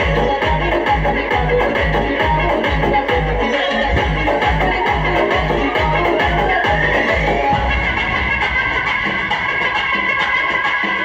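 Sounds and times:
heavy bass beat: 0.0 - 11.0
loud dance music: 0.0 - 11.0
rising tone sweep: 7.4 - 10.3.

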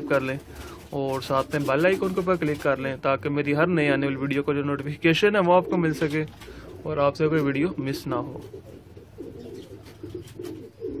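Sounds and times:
pigeons cooing: 0.0 - 2.6, 5.4 - 11.0.

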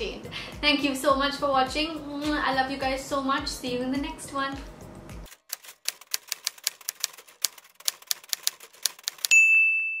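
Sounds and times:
typewriter keys clacking: 5.3 - 9.4
typewriter bell ding: 9.2 - 10.0.

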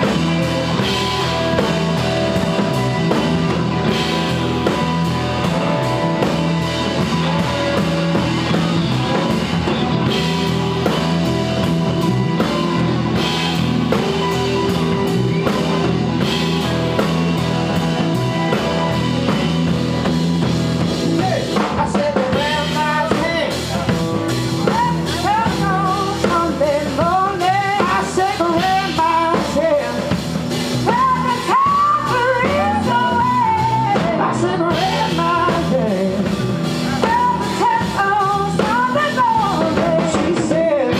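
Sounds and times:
bending lead guitar melody: 0.0 - 40.9
blues-rock band playing: 0.0 - 40.9
person singing: 21.0 - 40.9.

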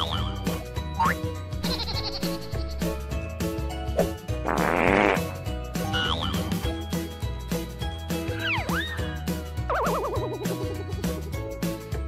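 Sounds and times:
background music: 0.0 - 12.0
cartoon fart sound effect: 4.4 - 5.3.

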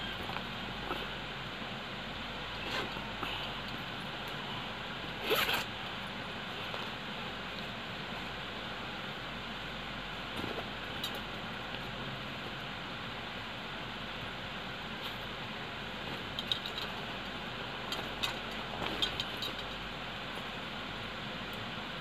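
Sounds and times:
steady background hiss: 0.0 - 22.0
zipper pulled quickly: 2.6 - 3.0, 5.2 - 5.7.

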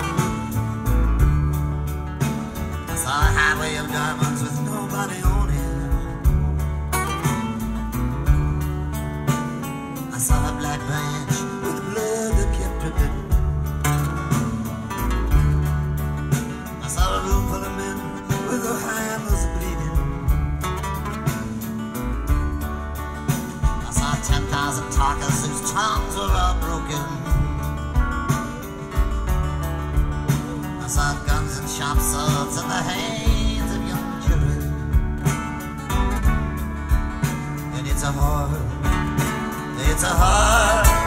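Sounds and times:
acoustic guitar strumming: 0.0 - 41.0
bass notes: 0.0 - 41.0
drums keeping time: 0.0 - 41.0.

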